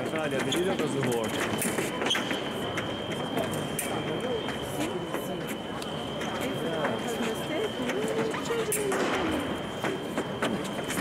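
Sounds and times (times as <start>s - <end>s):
steady high-pitched tone: 0.0s - 11.0s
voices talking: 0.0s - 11.0s.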